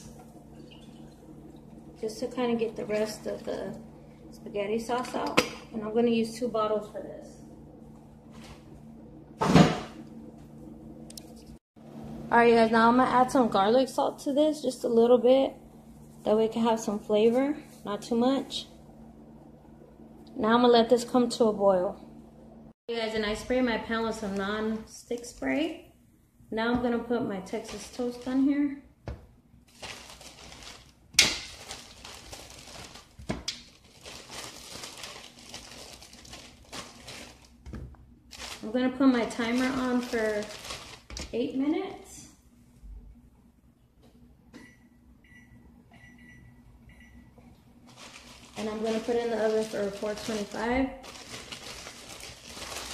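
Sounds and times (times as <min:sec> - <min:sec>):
faint steady hum: 0:00.0 - 0:52.9.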